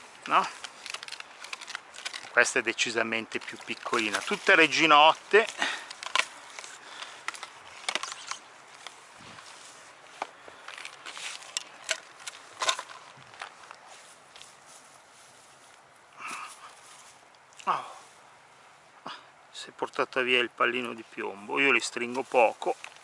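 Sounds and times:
footsteps in grass: 0:00.0 - 0:18.6, 0:20.8 - 0:23.0
landing net rustling and clicking: 0:00.1 - 0:14.5.

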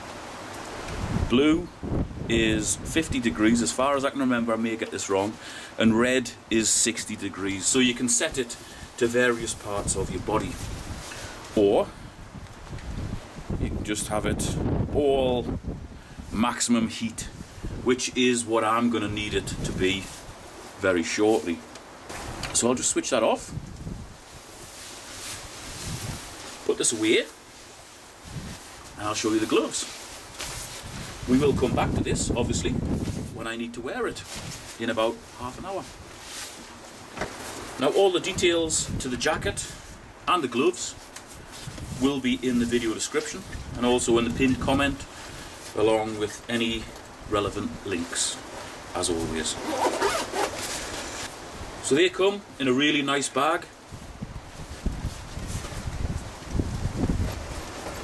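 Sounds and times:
wind and drizzle on microphone: 0:00.0 - 0:58.0
nylon jacket rustling: 0:09.2 - 0:11.6, 0:23.8 - 0:33.4, 0:34.0 - 0:40.1, 0:40.9 - 0:45.9, 0:48.4 - 0:51.8, 0:53.9 - 0:58.0
zipper on fabric bag: 0:49.5 - 0:51.3.

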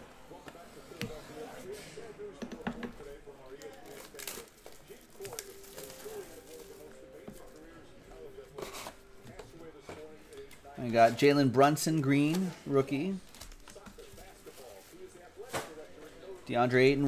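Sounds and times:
faint background voices: 0:00.0 - 0:17.0
trading cards rustling and clicking: 0:03.6 - 0:07.7.

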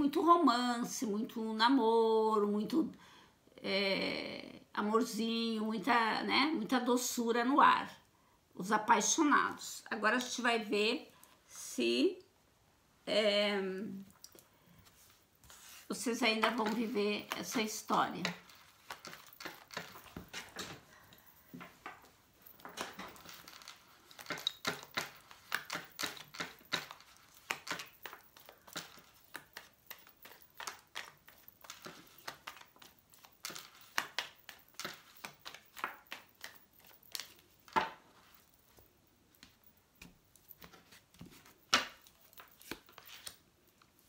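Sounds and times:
cards being shuffled by hand: 0:14.8 - 0:44.0
cards snapping: 0:16.4 - 0:20.8, 0:22.7 - 0:37.8, 0:40.0 - 0:43.4.

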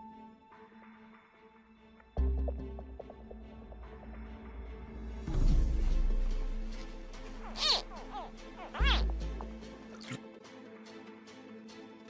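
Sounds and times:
baby crocodile chirping call: 0:07.4 - 0:09.1.

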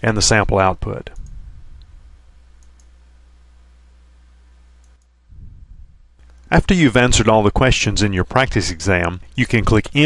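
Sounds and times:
low steady hum: 0:00.0 - 0:10.0
computer mouse clicks: 0:04.8 - 0:05.1.

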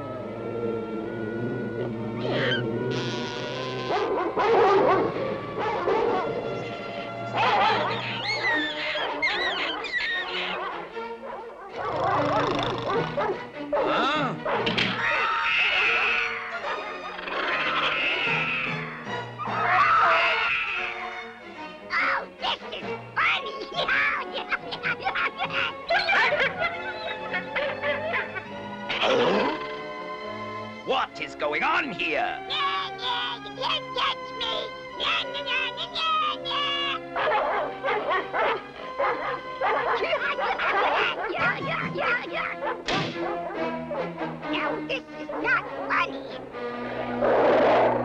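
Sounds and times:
background music: 0:00.0 - 0:48.0
cartoon bear roaring: 0:01.1 - 0:03.8, 0:11.8 - 0:13.2, 0:13.8 - 0:21.1, 0:28.9 - 0:29.8
dogs barking: 0:03.8 - 0:21.1, 0:22.6 - 0:29.8, 0:35.0 - 0:46.4.

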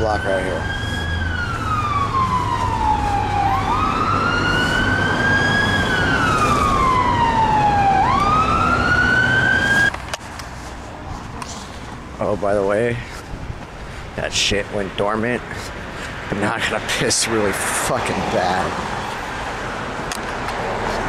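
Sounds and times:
emergency siren wailing: 0:00.0 - 0:10.0
traffic noise: 0:00.0 - 0:21.0.

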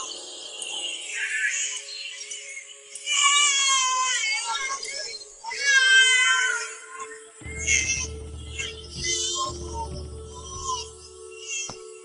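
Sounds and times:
background music with held tone: 0:00.0 - 0:12.0
high wavering cry: 0:01.1 - 0:12.0.

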